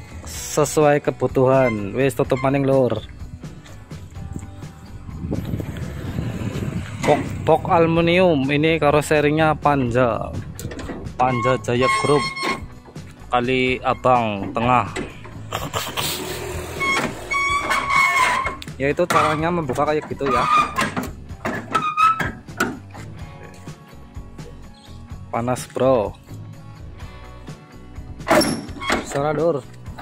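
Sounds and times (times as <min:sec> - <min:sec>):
background music: 0:00.0 - 0:30.0
metal latch rattling and clanking: 0:09.6 - 0:15.5, 0:16.8 - 0:23.2, 0:28.2 - 0:30.0
metal door latch clunk: 0:10.5 - 0:12.7, 0:28.3 - 0:29.2.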